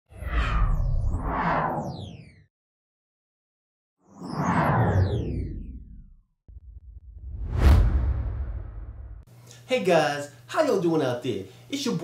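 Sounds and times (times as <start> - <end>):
deep rumble: 6.5 - 9.3
whooshing rushes of noise: 7.2 - 9.3.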